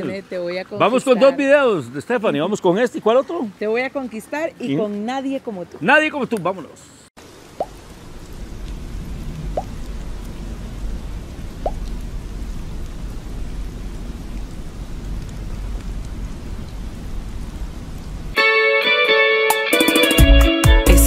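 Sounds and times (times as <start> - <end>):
steady rain: 0.0 - 18.5
low rumble: 8.0 - 18.4.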